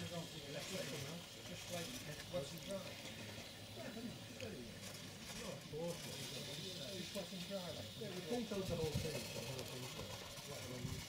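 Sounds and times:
faint voices talking: 0.0s - 11.0s
steady hiss: 0.0s - 11.0s.

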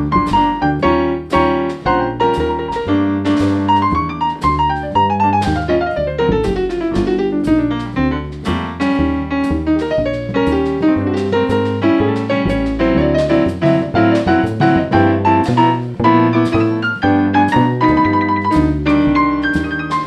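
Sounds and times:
jazz piano solo: 0.0s - 20.0s
upright bass notes: 0.0s - 20.0s.

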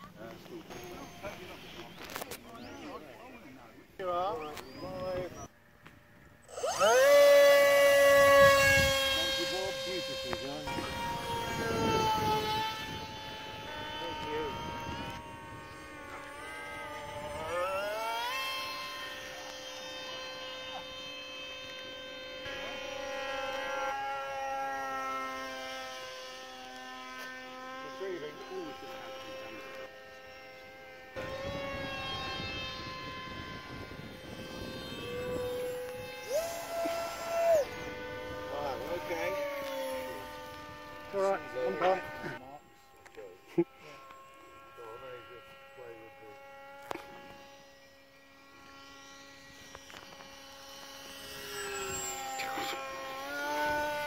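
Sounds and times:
model aircraft motor whine: 0.0s - 54.0s.

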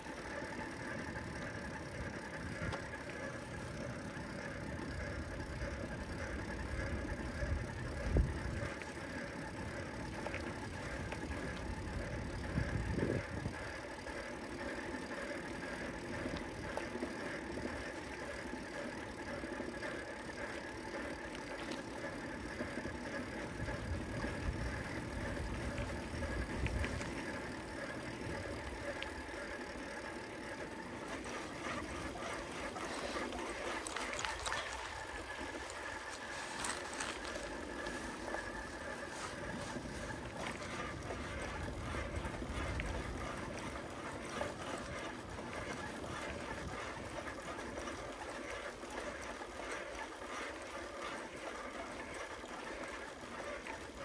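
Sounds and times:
bicycle tyre and drivetrain noise: 0.0s - 54.0s.

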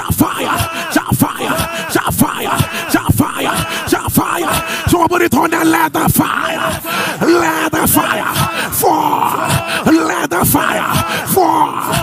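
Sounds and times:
man intoning prayer: 0.0s - 12.0s.

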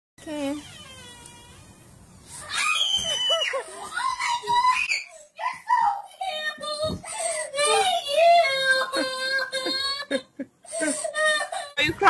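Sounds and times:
young child screaming and crying: 2.4s - 6.0s.

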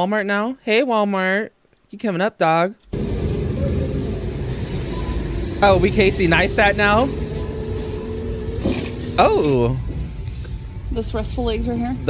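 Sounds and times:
shopping cart wheels rolling: 2.9s - 9.8s.

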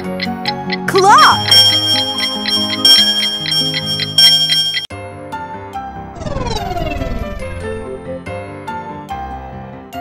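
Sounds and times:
cartoon music: 0.0s - 4.9s
clock ticking: 0.0s - 4.9s
alarm clock bell ringing: 1.0s - 4.9s.

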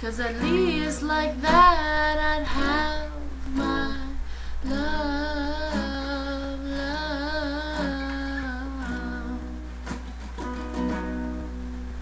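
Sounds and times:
picked acoustic guitar: 0.0s - 12.0s
steady low hum: 0.0s - 12.0s.

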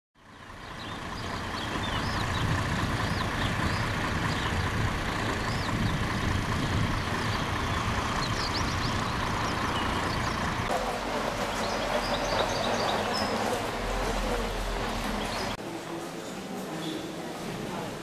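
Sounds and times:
diesel engine idling: 0.2s - 15.6s.

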